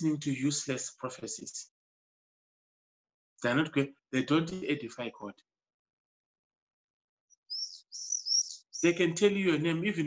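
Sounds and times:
bird chirps: 0:07.3 - 0:09.1.

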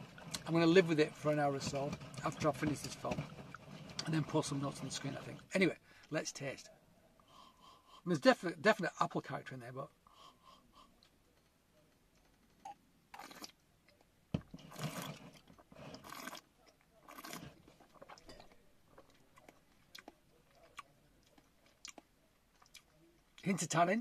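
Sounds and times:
person sipping: 0:13.2 - 0:13.6, 0:14.6 - 0:16.4, 0:17.0 - 0:19.1.

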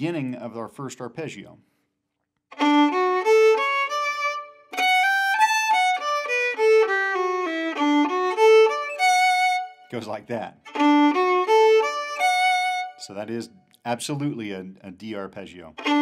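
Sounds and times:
solo fiddle playing reel: 0:02.5 - 0:09.9, 0:10.6 - 0:13.1, 0:15.8 - 0:16.0.

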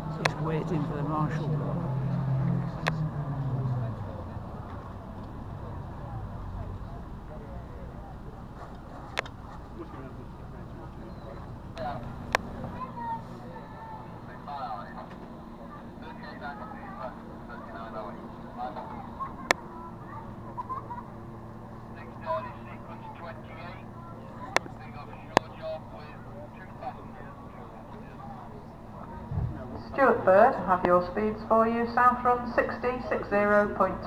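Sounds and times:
distant powerboat engines droning: 0:00.0 - 0:34.0
faint chatter of people: 0:00.0 - 0:34.0.

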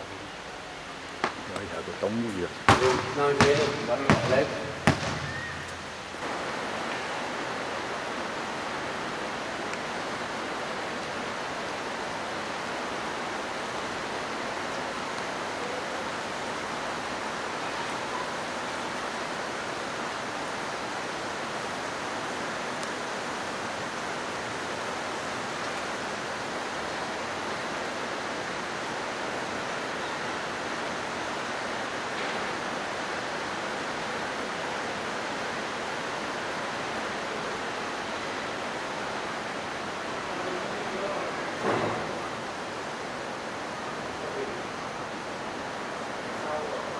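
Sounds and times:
steady rushing hiss: 0:00.0 - 0:46.9.

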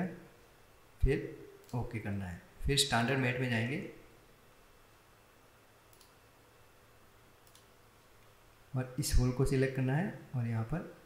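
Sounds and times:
faint mouse clicks: 0:05.9 - 0:06.2, 0:07.4 - 0:08.3.

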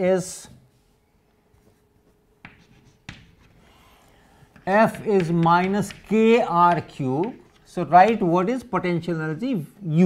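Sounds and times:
chalk writing on blackboard: 0:02.4 - 0:03.7, 0:04.4 - 0:08.3.

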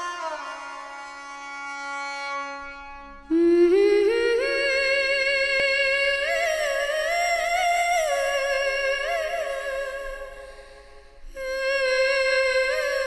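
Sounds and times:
person humming a melody: 0:11.3 - 0:13.0.

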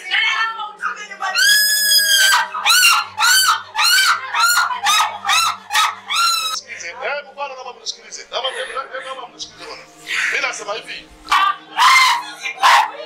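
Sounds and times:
woman wailing and sobbing: 0:01.4 - 0:06.6.

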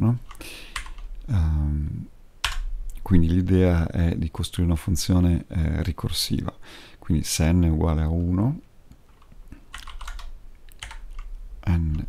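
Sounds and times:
typing on computer keyboard: 0:00.2 - 0:01.1, 0:09.1 - 0:11.3.

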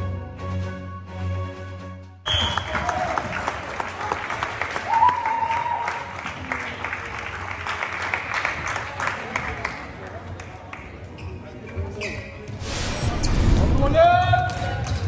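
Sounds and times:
spectators clapping and cheering: 0:02.3 - 0:11.1.

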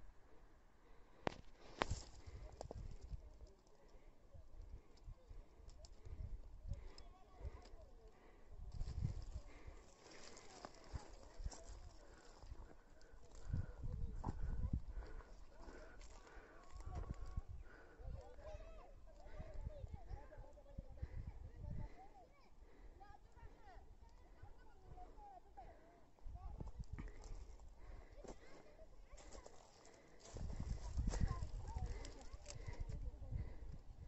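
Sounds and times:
faint distant voices: 0:00.3 - 0:34.0.

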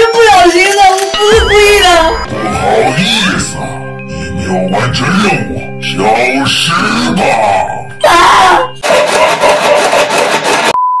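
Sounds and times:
test tone beep: 0:01.1 - 0:04.0.

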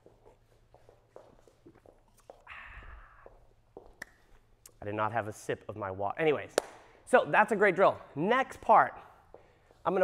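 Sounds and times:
footsteps on wooden floor: 0:00.0 - 0:02.5.

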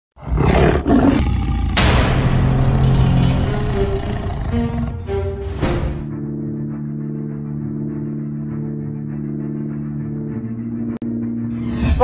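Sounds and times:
tiger roar: 0:00.2 - 0:05.1.

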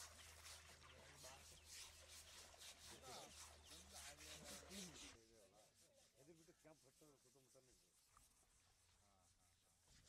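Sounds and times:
rasping scrubbing strokes: 0:00.0 - 0:10.0.

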